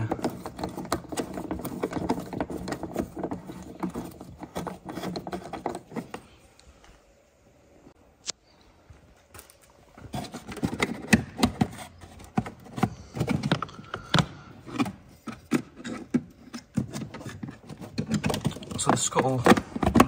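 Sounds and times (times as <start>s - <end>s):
plastic panel knocking and scraping: 0.0s - 6.2s, 10.1s - 20.0s.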